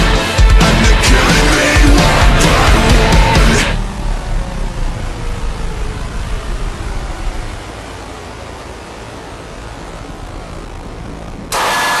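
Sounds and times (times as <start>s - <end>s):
static burst with thin high tone: 7.4s - 12.0s.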